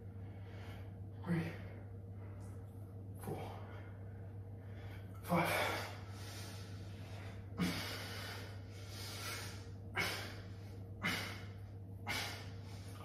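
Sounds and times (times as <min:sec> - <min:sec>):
man exhaling forcefully: 0:07.6 - 0:13.0.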